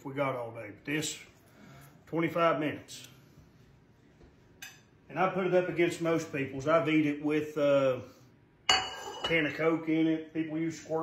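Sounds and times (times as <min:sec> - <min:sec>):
pan clinking on dish rack: 0:08.7 - 0:09.6.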